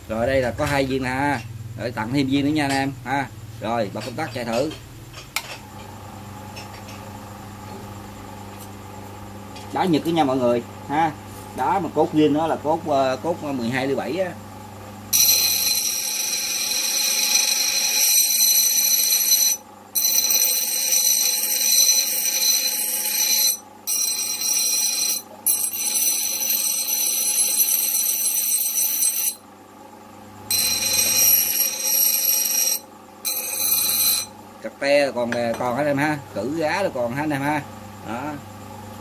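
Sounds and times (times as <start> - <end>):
bench grinder screeching on metal: 15.2 - 29.4, 30.5 - 34.3.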